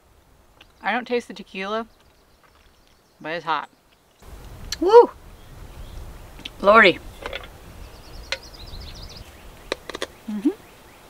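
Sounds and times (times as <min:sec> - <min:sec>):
small bird chirping: 0:00.6 - 0:11.0.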